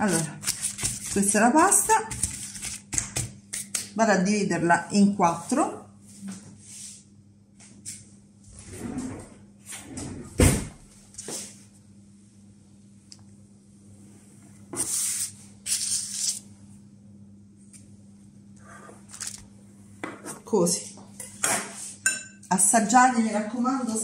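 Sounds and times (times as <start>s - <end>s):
knife scraping pastry and paper: 0.0s - 3.8s, 14.8s - 16.5s, 18.6s - 19.4s.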